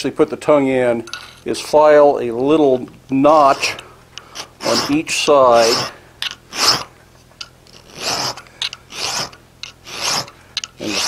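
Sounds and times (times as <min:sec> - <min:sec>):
file strokes on metal bar: 0:03.3 - 0:03.8, 0:04.4 - 0:06.9, 0:07.8 - 0:11.0.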